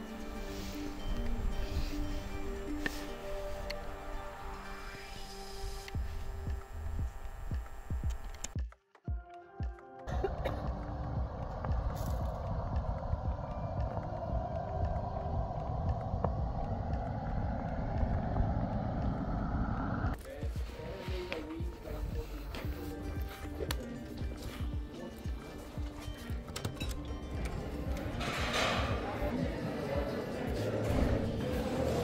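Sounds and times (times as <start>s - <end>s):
background music: 0.0s - 32.0s
car road and wind noise: 11.1s - 20.2s.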